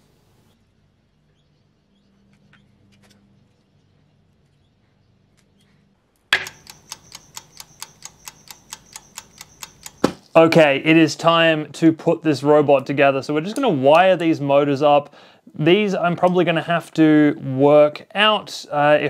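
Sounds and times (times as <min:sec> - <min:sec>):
steady even ticking: 0:06.4 - 0:10.7.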